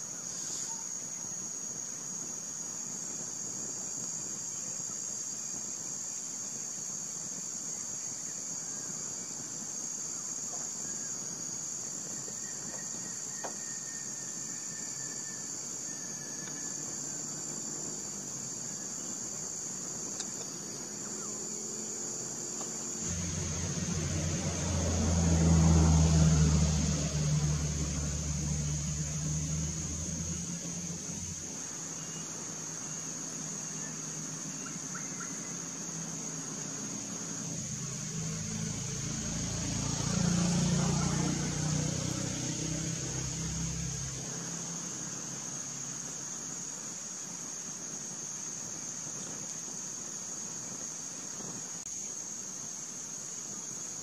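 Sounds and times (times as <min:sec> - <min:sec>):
insects droning: 0:00.0 - 0:54.0
low rumble: 0:23.0 - 0:31.4.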